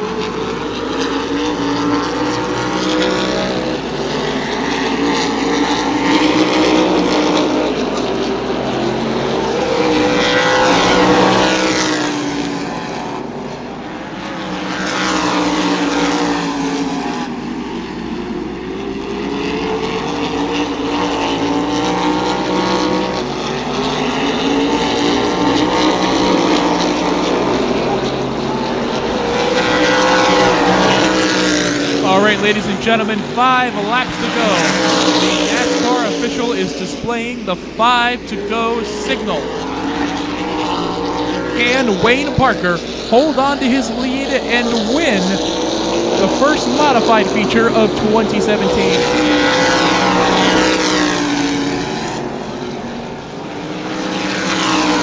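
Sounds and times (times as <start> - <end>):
race car engines passing by: 0.0 - 55.0.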